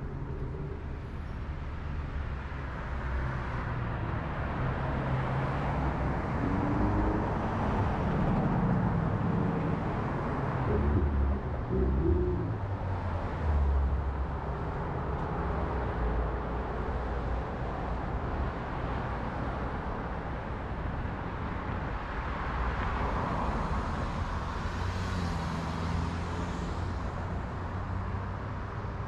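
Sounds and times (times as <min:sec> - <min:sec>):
highway traffic rushing: 0:00.0 - 0:29.0
short low tones: 0:10.5 - 0:14.3.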